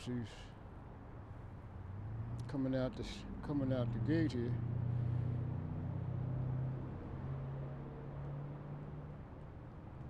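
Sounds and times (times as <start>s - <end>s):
faint road noise: 0.0s - 10.0s
vehicle engine humming: 0.8s - 10.0s.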